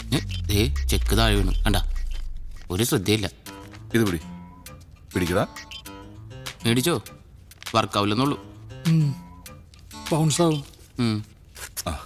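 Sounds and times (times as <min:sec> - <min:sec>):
speech: 0:00.0 - 0:02.0, 0:05.1 - 0:05.5, 0:06.6 - 0:07.1, 0:07.7 - 0:09.2, 0:10.1 - 0:12.0
low bass note: 0:00.0 - 0:03.2
background music: 0:00.0 - 0:11.1.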